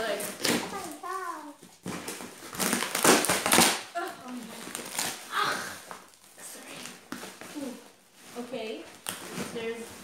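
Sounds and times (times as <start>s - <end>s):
tape and cardboard tearing: 0.3s - 6.1s.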